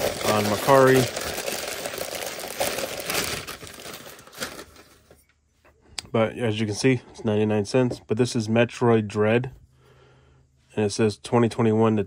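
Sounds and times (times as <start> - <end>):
newspaper and plastic bag crinkling: 0.0 - 5.2.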